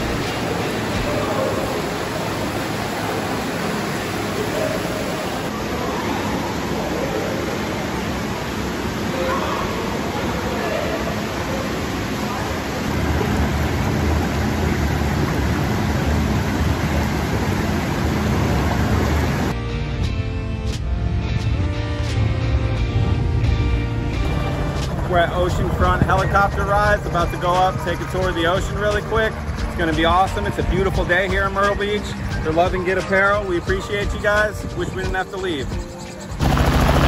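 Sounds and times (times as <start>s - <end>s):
hot tub jets churning: 0.0s - 19.6s, 24.2s - 37.0s
pool fountain splashing: 0.0s - 19.6s, 24.4s - 35.6s
music: 19.5s - 37.0s.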